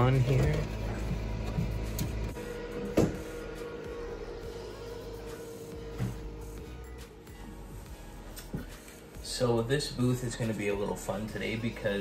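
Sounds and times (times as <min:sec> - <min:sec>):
background music: 0:00.0 - 0:12.0
computer humming: 0:00.0 - 0:12.0.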